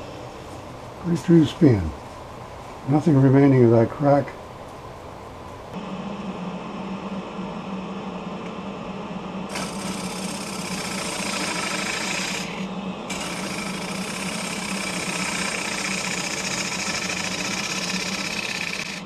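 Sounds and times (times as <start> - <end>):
lathe motor hum: 5.8 - 19.0
gouge cutting wood hiss: 9.5 - 19.0.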